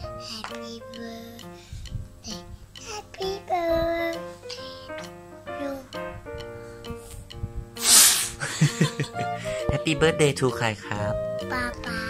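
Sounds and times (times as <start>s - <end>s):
background music: 0.0s - 12.0s
boy's sneeze-like burst of breath: 7.8s - 8.4s.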